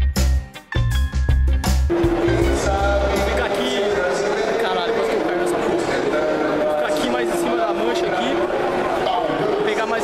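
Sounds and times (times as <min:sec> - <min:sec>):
crowd talking: 0:01.9 - 0:10.0.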